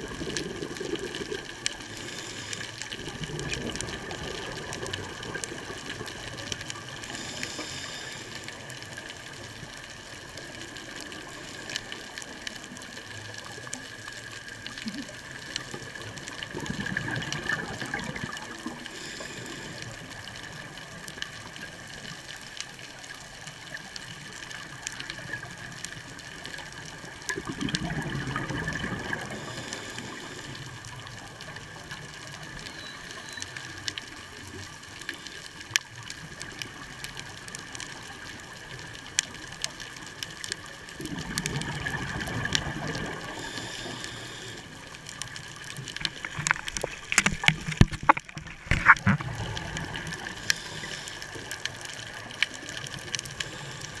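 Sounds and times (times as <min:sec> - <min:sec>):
underwater bubbles rushing: 0:00.0 - 0:54.0
faint steady whine: 0:01.4 - 0:27.4, 0:28.4 - 0:54.0.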